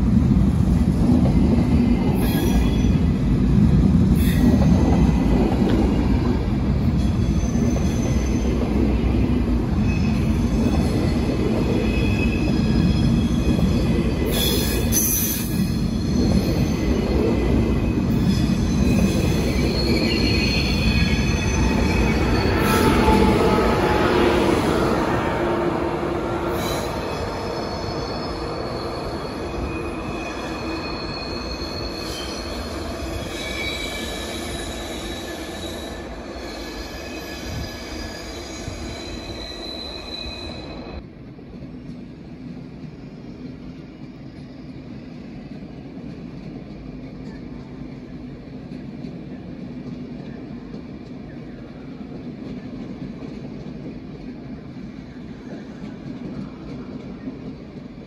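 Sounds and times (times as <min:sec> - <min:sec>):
high-speed train rumble: 0:00.0 - 0:58.0
train wheel squeals: 0:01.2 - 0:03.2, 0:04.2 - 0:41.0, 0:42.9 - 0:45.6.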